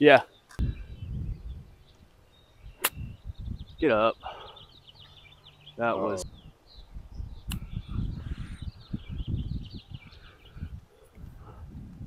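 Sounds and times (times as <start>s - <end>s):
wind on microphone: 0.6s - 4.7s, 6.2s - 12.0s.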